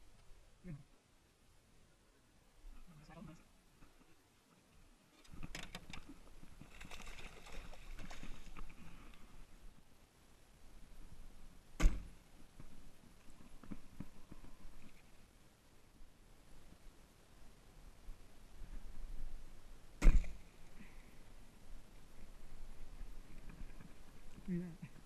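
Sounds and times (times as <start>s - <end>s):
bow shot crack: 11.8s - 12.2s, 20.0s - 20.5s.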